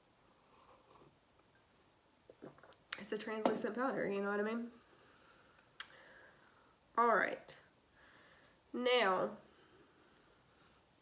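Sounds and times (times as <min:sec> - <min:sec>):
person sipping and swallowing: 0:00.5 - 0:01.2, 0:02.3 - 0:03.0.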